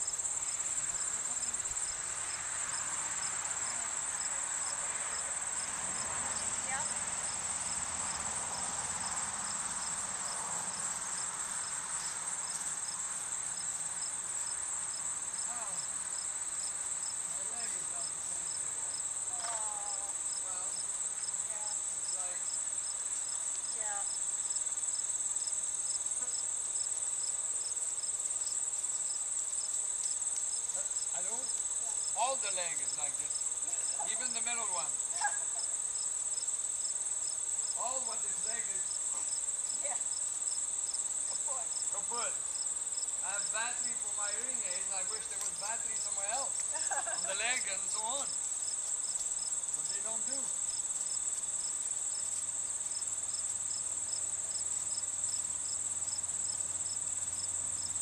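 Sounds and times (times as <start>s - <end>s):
faint pulsing insect call: 0.0s - 58.0s
high-pitched insect trilling: 0.0s - 58.0s.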